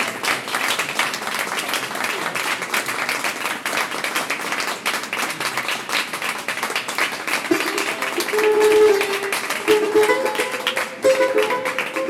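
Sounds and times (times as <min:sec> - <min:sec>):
long-necked lute plucked: 0:07.5 - 0:12.0
hand drum tapping: 0:07.6 - 0:12.0.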